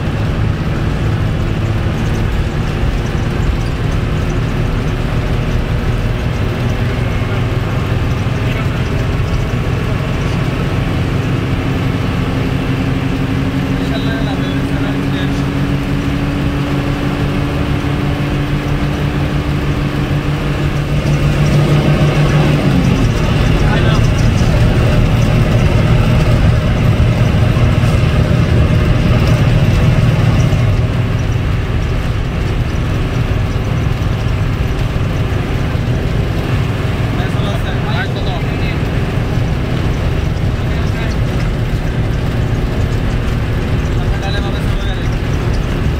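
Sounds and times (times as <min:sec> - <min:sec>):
bus diesel engine: 0:00.0 - 0:45.9
road noise: 0:00.0 - 0:45.9.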